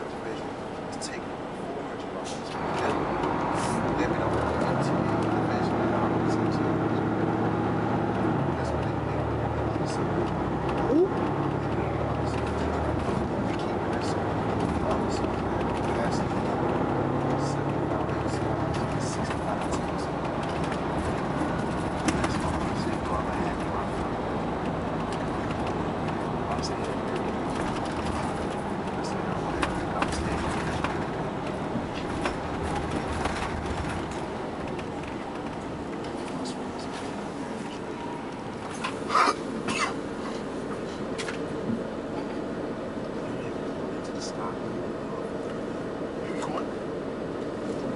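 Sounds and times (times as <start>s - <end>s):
diesel engine droning: 0.0s - 47.9s
road and tyre noise: 0.0s - 47.9s
person coughing: 39.1s - 40.0s.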